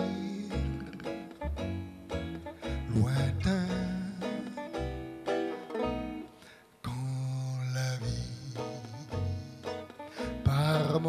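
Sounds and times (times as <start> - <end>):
small jazz band: 0.0 - 6.5, 8.6 - 11.0
banjo plucking a melody: 0.0 - 11.0.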